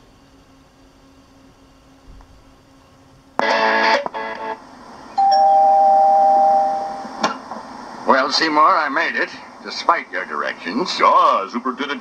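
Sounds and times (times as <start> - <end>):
two-tone doorbell ding-dong: 5.2 - 7.0.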